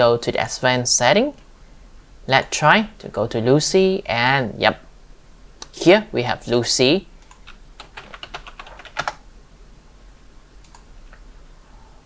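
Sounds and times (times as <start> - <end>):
keyboard keystrokes: 7.2 - 9.2
faint clicks: 10.6 - 11.3.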